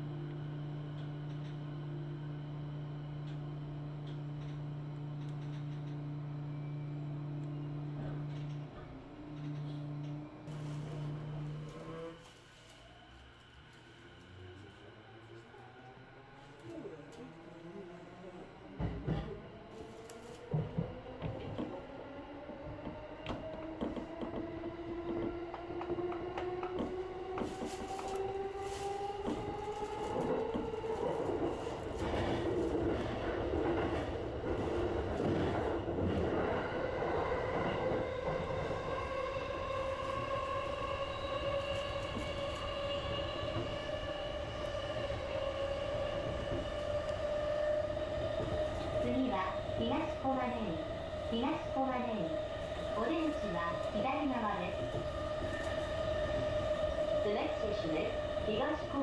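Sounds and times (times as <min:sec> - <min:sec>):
automated train announcement: 0:00.0 - 0:20.0, 0:37.0 - 0:59.0
electric train motor whine: 0:00.0 - 0:59.0
wheels rumbling on rail: 0:00.0 - 0:59.0.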